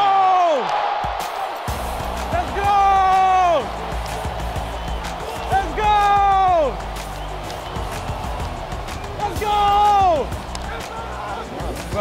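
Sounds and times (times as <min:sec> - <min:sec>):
background music with bass: 0:01.7 - 0:12.0.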